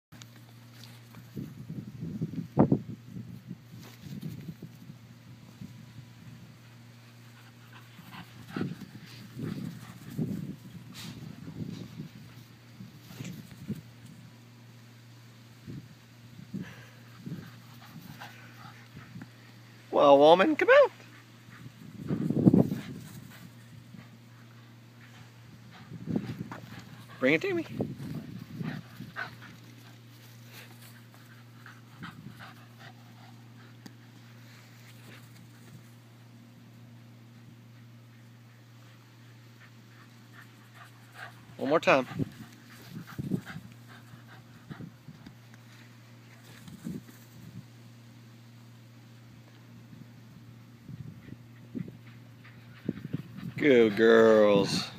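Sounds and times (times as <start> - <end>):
faint low hum: 0.2 - 54.9
dog panting: 7.2 - 10.4, 21.0 - 34.2, 37.8 - 45.4, 51.1 - 54.9.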